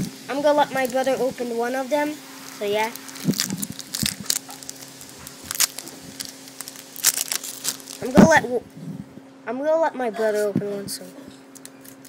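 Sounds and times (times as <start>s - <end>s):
faint steady hum: 0.0s - 12.0s
foil wrappers crinkling: 0.4s - 8.4s, 11.4s - 12.0s.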